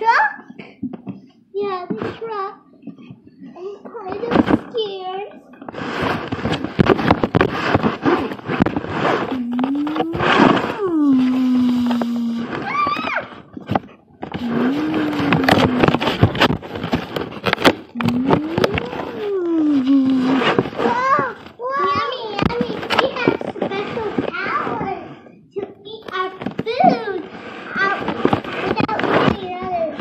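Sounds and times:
plastic rustling and clicking: 0:00.6 - 0:24.9, 0:25.6 - 0:30.0
child making engine noise: 0:09.3 - 0:13.3, 0:14.4 - 0:16.3, 0:18.0 - 0:20.9.

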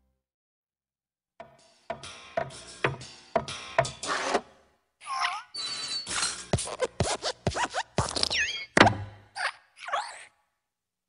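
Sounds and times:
cartoon springy squeaks and thumps: 0:05.0 - 0:10.3.

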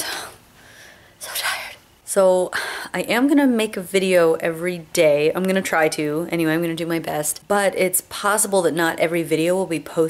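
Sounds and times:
woman breathing: 0:00.0 - 0:01.8, 0:02.5 - 0:03.0.

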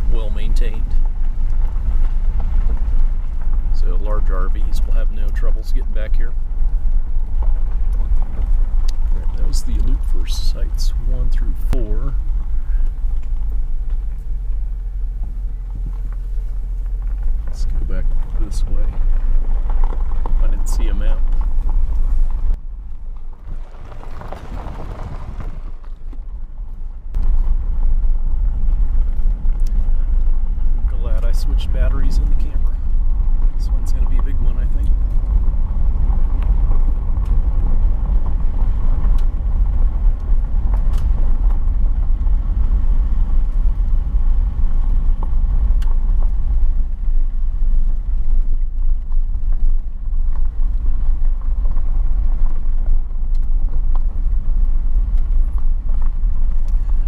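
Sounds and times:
vehicle rumbling on dirt road: 0:00.0 - 0:57.0.

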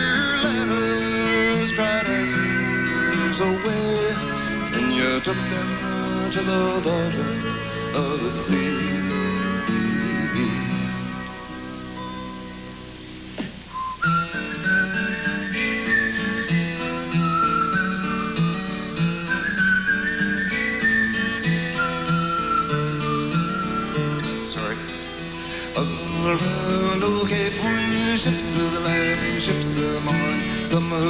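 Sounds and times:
high sliding lead melody: 0:00.0 - 0:31.0
strummed acoustic guitar: 0:00.0 - 0:31.0.

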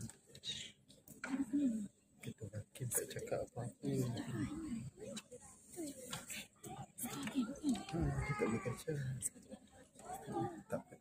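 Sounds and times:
people talking: 0:01.3 - 0:11.0.

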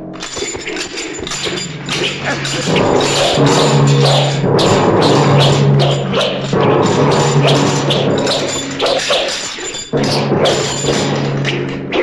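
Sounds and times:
film score music: 0:00.0 - 0:12.0.

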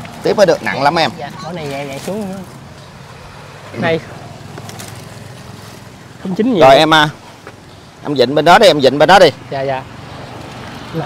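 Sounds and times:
low vehicle engine hum: 0:00.0 - 0:11.0.

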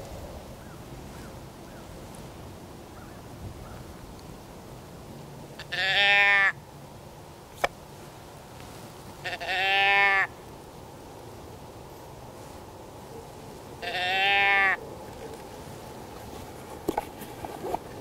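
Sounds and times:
deer call bleats: 0:05.6 - 0:06.6, 0:09.2 - 0:10.4, 0:13.8 - 0:14.8.

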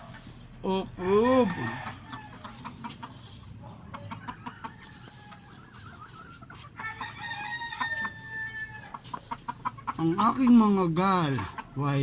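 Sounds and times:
chickens clucking: 0:00.0 - 0:12.0
rooster crowing: 0:01.0 - 0:02.5, 0:06.8 - 0:09.0.

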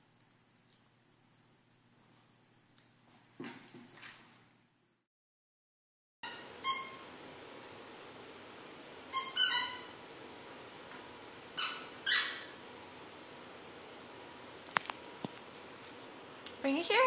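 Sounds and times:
squeaky dog toy squeaking: 0:06.2 - 0:07.0, 0:09.1 - 0:09.9, 0:11.6 - 0:12.6.

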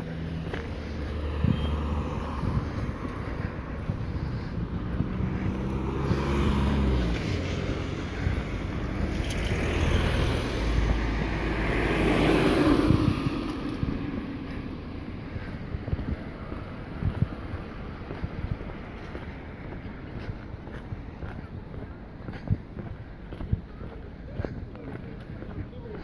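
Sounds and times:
cars passing: 0:00.0 - 0:26.0.

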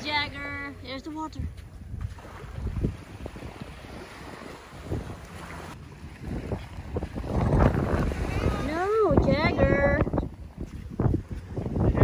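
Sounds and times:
small waves washing on sand: 0:00.0 - 0:12.0
wind rumbling on microphone: 0:00.0 - 0:12.0.

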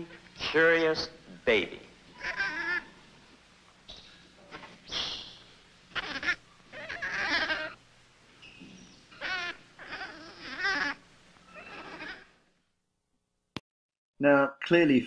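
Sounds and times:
infant monkey crying: 0:02.1 - 0:03.0, 0:03.9 - 0:07.8, 0:08.4 - 0:12.5.

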